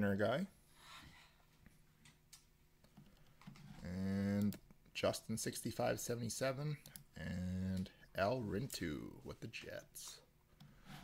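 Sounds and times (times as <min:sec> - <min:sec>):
man speaking: 0:00.0 - 0:00.6, 0:03.8 - 0:10.3.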